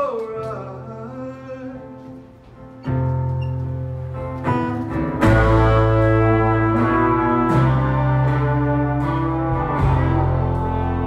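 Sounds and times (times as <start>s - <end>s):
bass: 0.0s - 11.0s
keyboard chords: 1.6s - 11.0s
electric guitar chords: 1.8s - 11.0s.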